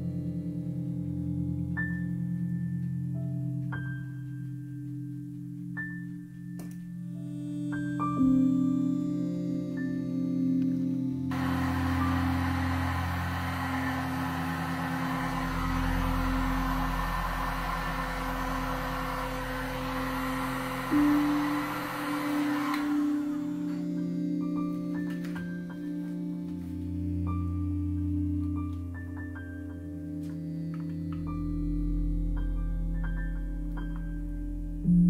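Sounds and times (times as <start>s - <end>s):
soft ambient music: 0.0s - 35.0s
heat gun blowing hiss: 11.3s - 23.8s.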